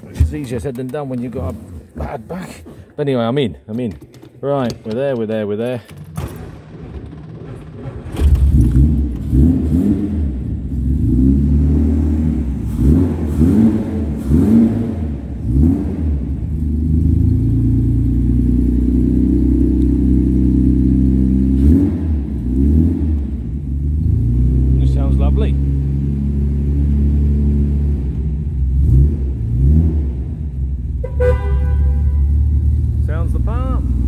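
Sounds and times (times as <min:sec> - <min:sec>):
car engine revving and idling: 0:06.6 - 0:34.0.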